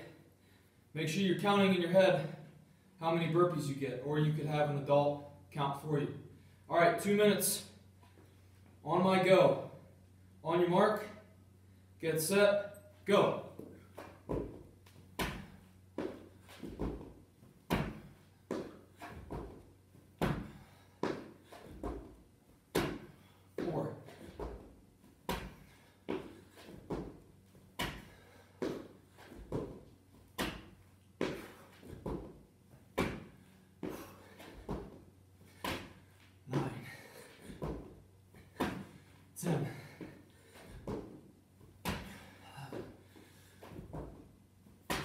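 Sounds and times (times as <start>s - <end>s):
thuds on rubber flooring: 14.2s - 27.2s, 27.8s - 34.0s, 37.5s - 38.0s
hard breathing: 33.3s - 41.1s, 42.0s - 43.9s.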